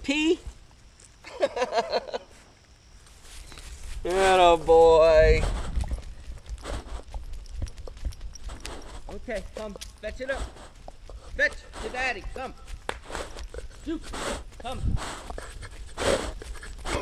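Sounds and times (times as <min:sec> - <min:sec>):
person laughing: 0:01.2 - 0:02.3, 0:15.2 - 0:17.0
dog paws running on grass and gravel: 0:03.0 - 0:17.0.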